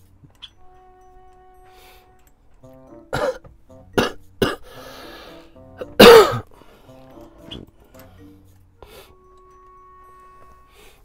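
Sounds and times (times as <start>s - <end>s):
soft background music: 0.0s - 11.0s
person coughing: 3.1s - 4.7s, 5.8s - 6.5s.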